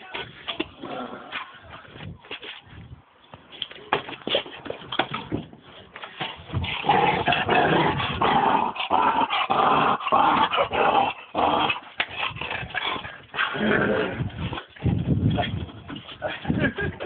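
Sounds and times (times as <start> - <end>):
dog growling: 6.6 - 14.4.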